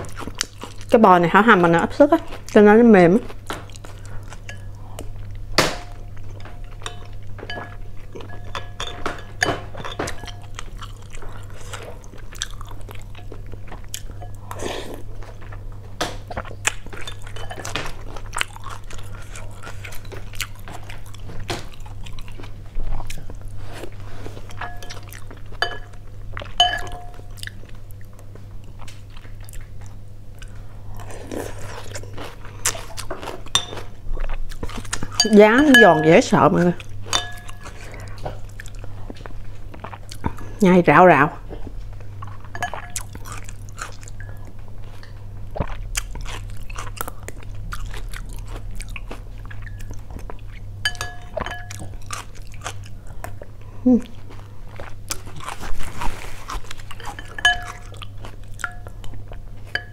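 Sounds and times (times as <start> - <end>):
chewing and crunching food: 0.0 - 59.9
steady low hum: 0.0 - 59.9.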